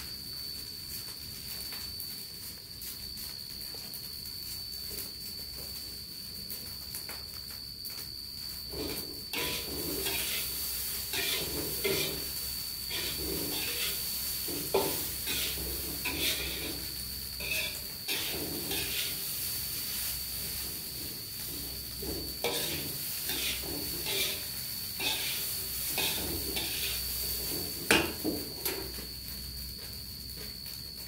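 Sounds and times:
rice sizzling in a wok: 0:00.0 - 0:31.0
kitchen utensils clattering: 0:08.8 - 0:10.5, 0:11.1 - 0:19.2, 0:21.5 - 0:28.8.

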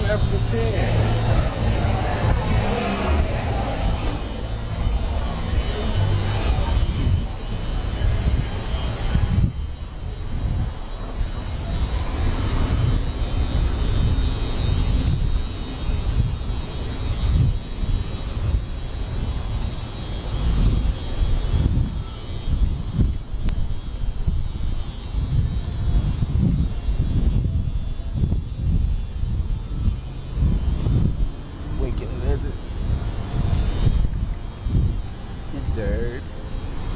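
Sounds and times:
wind buffeting microphone: 0:00.0 - 0:36.9.

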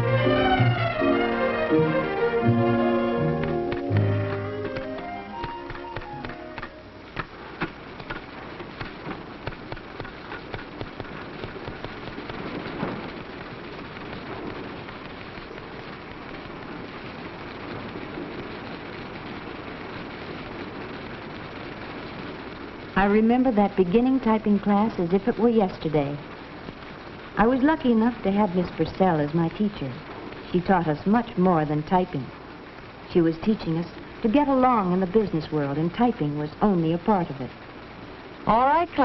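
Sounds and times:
orchestral music: 0:00.0 - 0:07.0
steady mechanical noise: 0:00.0 - 0:39.0.

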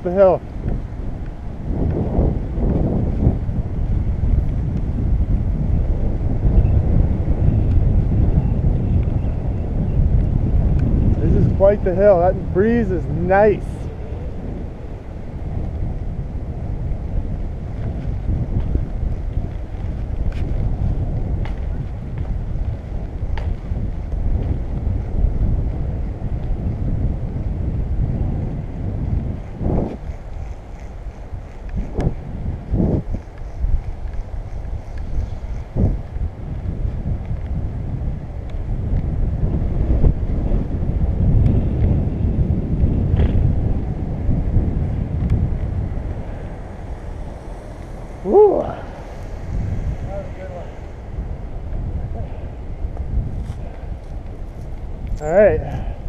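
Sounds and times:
wind rumbling on microphone: 0:00.0 - 0:56.0.

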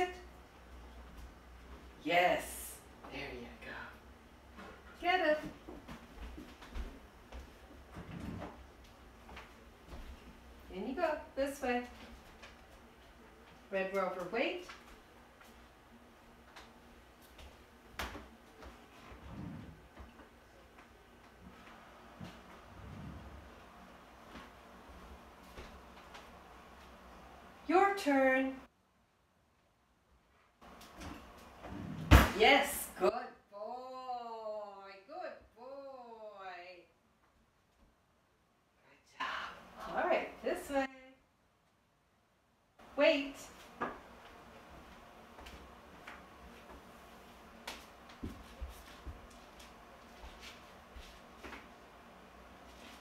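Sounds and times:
footsteps on hardwood floor: 0:48.0 - 0:51.7.

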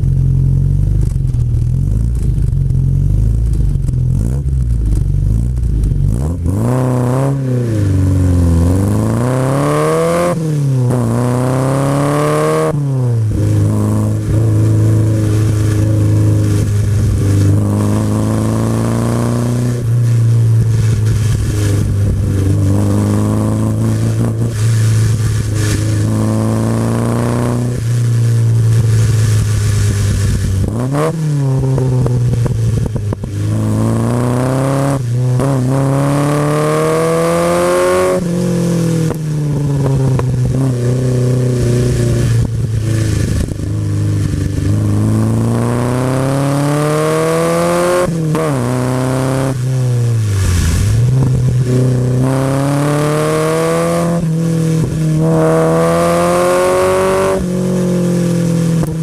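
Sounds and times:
car engine accelerating: 0:00.0 - 0:59.0.

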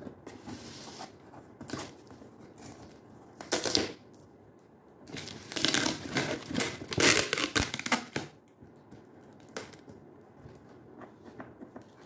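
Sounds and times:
packing tape and plastic crinkling: 0:01.0 - 0:04.0, 0:05.1 - 0:08.4.

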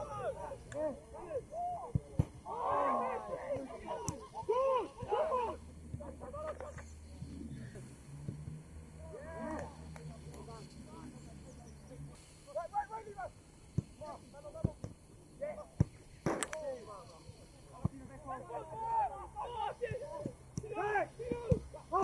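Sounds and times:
players calling and shouting: 0:00.0 - 0:22.0.

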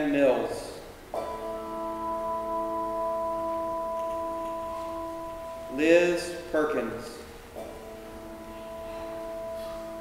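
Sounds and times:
bell ringing: 0:01.2 - 0:05.9.

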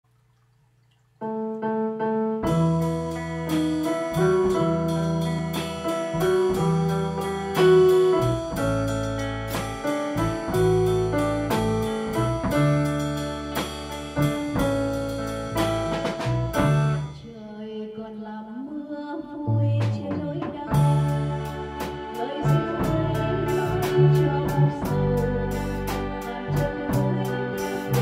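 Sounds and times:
keyboard chords: 0:01.2 - 0:17.2, 0:20.7 - 0:28.0
rock band playing: 0:02.4 - 0:17.2, 0:20.7 - 0:28.0.

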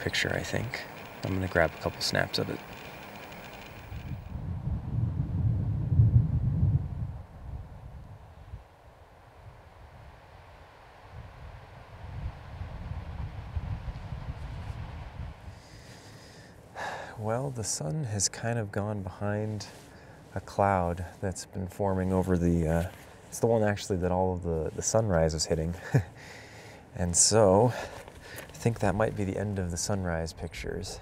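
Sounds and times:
wind buffeting microphone: 0:00.0 - 0:08.3.

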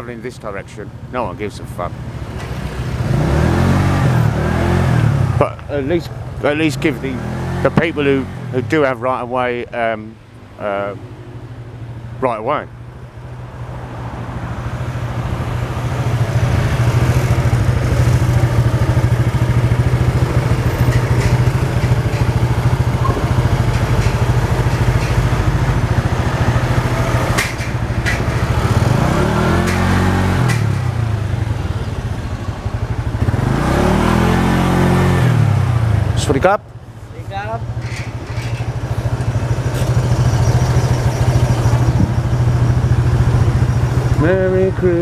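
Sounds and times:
road noise: 0:00.0 - 0:45.0
small motorbike engine running: 0:16.4 - 0:34.0
wind noise: 0:41.7 - 0:42.5.

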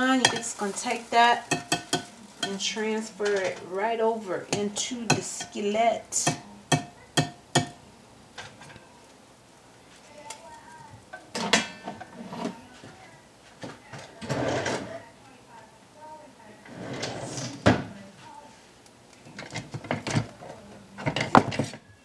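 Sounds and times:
utensil scraping: 0:00.0 - 0:07.3, 0:11.9 - 0:12.8, 0:16.6 - 0:17.7
metal utensil clinking on skillet: 0:00.0 - 0:07.8, 0:11.1 - 0:12.1
utensil clattering: 0:00.0 - 0:07.8.

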